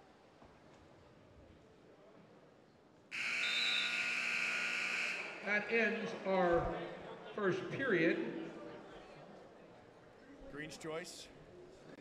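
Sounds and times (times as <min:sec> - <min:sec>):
loud electronic buzzer: 0:03.1 - 0:05.5.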